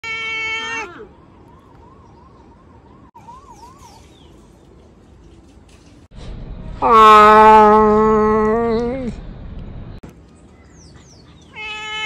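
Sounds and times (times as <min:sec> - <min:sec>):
cat meowing: 0:00.0 - 0:01.1, 0:11.5 - 0:12.0.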